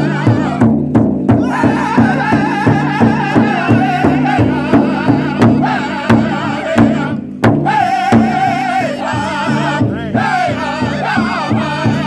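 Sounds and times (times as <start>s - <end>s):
large drum steady beat: 0.0s - 12.0s
men singing in unison: 0.0s - 12.0s.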